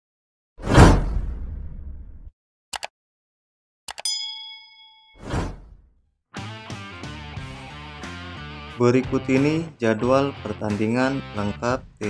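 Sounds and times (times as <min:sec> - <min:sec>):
bell ding: 0:04.0 - 0:05.2.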